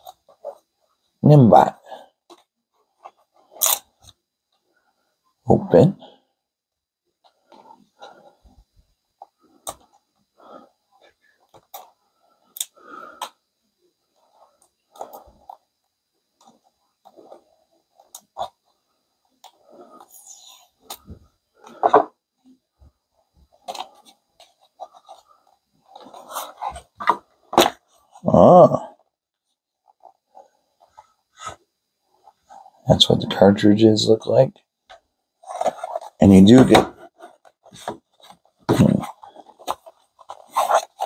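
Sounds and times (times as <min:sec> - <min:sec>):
rustling packaging: 0:35.4 - 0:41.0.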